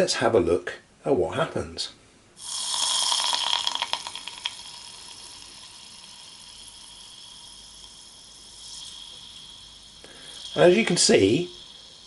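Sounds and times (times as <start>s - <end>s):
liquid nitrogen hissing and crackling: 2.4s - 12.0s.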